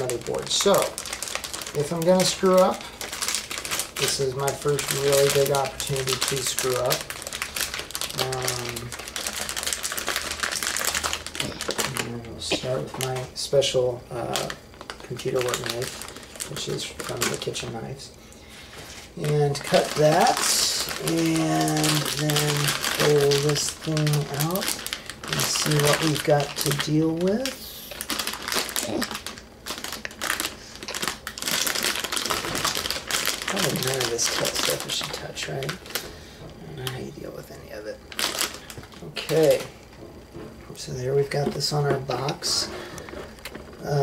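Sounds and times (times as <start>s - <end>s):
plastic packaging crinkling: 0.0s - 18.0s, 18.6s - 44.0s.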